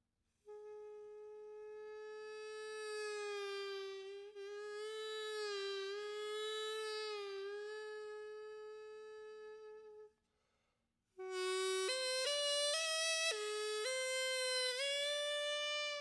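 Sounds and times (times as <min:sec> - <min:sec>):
double-reed pipe long note: 0:00.5 - 0:10.1.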